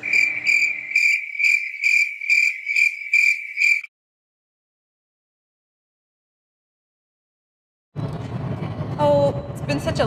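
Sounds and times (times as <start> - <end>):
crickets chirping: 0.0 - 3.9.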